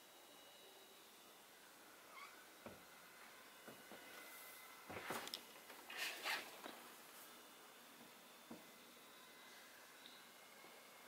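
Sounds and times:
short squeak bending in pitch: 0:02.1 - 0:02.4.

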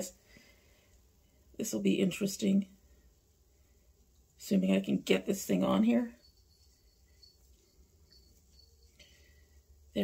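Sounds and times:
low hum: 0:06.0 - 0:10.0.

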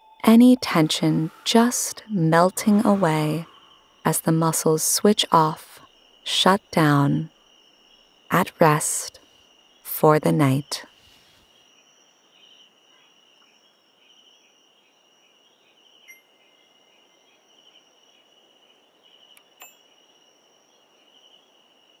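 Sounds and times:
crickets chirping: 0:00.0 - 0:22.0
soft chime-like pings: 0:16.1 - 0:16.4, 0:19.6 - 0:19.8.

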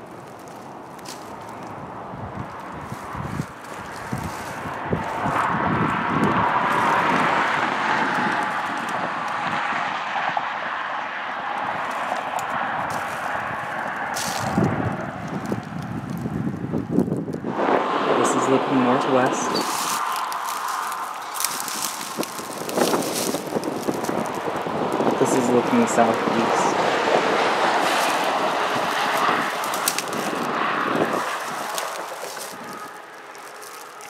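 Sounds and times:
highway traffic passing: 0:00.0 - 0:34.0
wind rumble on microphone: 0:00.0 - 0:34.0.

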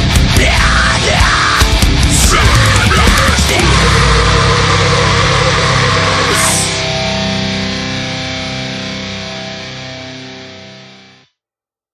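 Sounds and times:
distorted electric guitars: 0:00.0 - 0:11.2.

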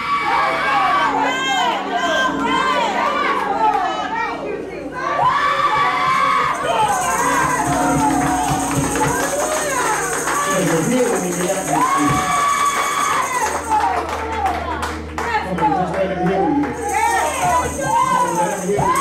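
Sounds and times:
voices calling out and singing: 0:00.0 - 0:13.8
church praise music: 0:00.0 - 0:19.0
deep held bass note: 0:06.7 - 0:10.4.

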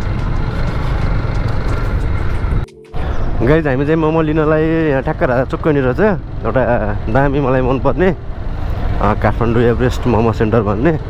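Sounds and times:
motorcycle engine rumble: 0:00.0 - 0:11.0
man talking: 0:03.4 - 0:08.2, 0:09.0 - 0:11.0.

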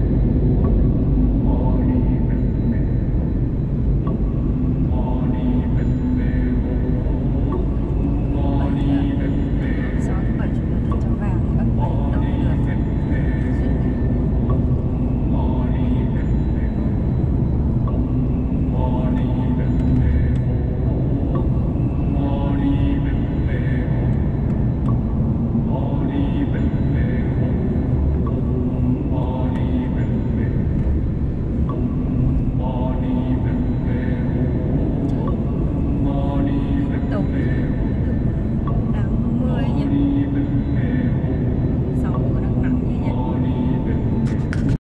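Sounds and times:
road and engine rumble in car: 0:00.0 - 0:22.2, 0:23.0 - 0:25.7
person speaking: 0:35.1 - 0:37.8, 0:38.7 - 0:40.4.

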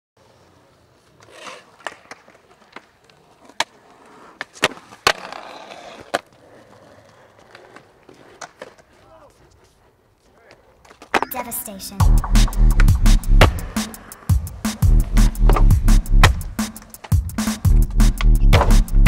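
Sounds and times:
skateboard wheels rolling on concrete: 0:00.2 - 0:19.0
skateboard clacks: 0:00.5 - 0:11.6, 0:12.2 - 0:18.8.

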